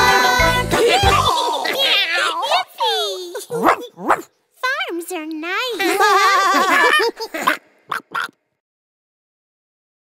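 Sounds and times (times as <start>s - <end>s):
cartoon dog barking: 3.5s - 4.3s, 6.8s - 8.4s.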